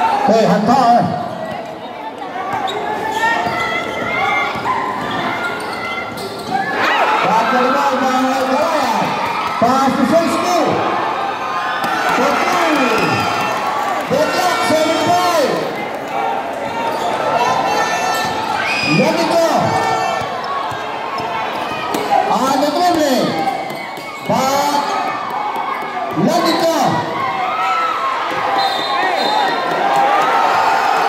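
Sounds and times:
large crowd noise: 0:00.0 - 0:31.0
spectators yelling: 0:00.0 - 0:31.0.

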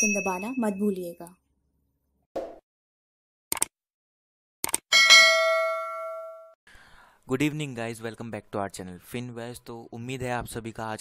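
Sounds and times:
bright bell ding: 0:00.0 - 0:01.2, 0:05.0 - 0:06.6.

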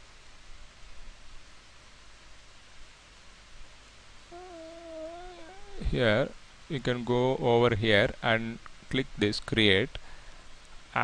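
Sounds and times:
wavering pitched call: 0:04.3 - 0:06.0
man speaking: 0:05.4 - 0:08.4.

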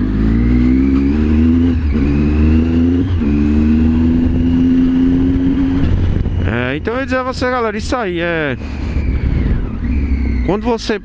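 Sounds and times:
motorcycle engine accelerating: 0:00.0 - 0:11.0.

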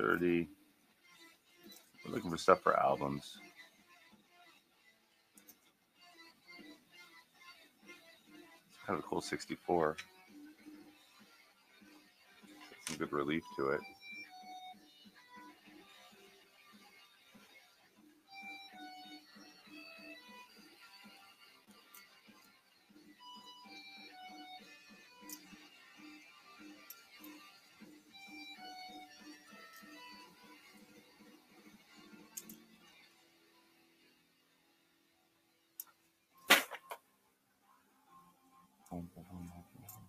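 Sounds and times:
plucked guitar-like background music: 0:01.6 - 0:03.4, 0:11.8 - 0:32.9.

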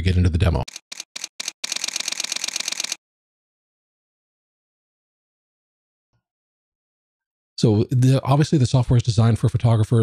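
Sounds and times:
camera shutter rapid burst: 0:00.7 - 0:03.0.

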